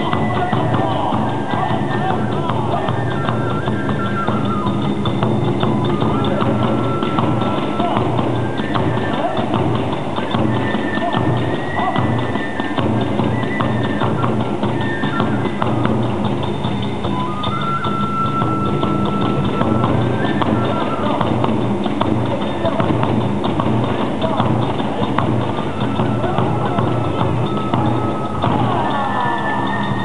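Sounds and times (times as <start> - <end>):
drums beating: 0.0 - 30.0
hand cymbals clashing: 0.0 - 30.0
transverse flute long notes: 0.0 - 30.0.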